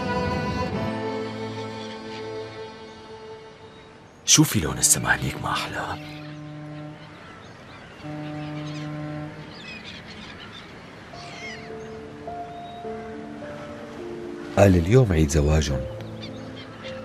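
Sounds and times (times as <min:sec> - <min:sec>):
birds calling: 0:00.0 - 0:17.0
soft background music: 0:00.0 - 0:17.0
ship's horn blasts: 0:05.9 - 0:11.2.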